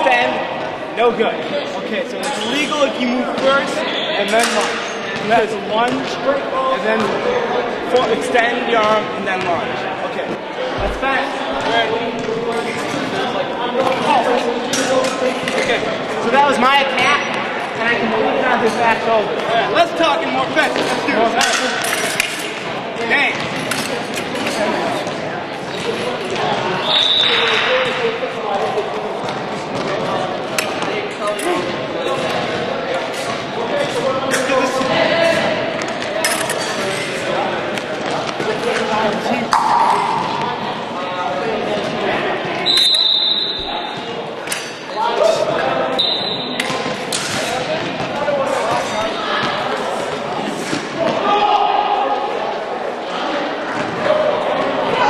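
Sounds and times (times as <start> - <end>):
voices talking: 0.0 - 55.0.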